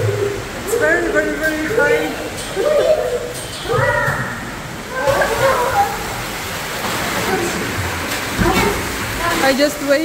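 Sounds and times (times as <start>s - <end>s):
water rushing through a slide: 0.0s - 10.0s.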